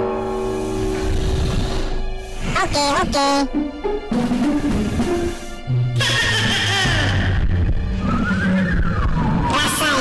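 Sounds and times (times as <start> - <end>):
low drone: 0.0 - 6.0.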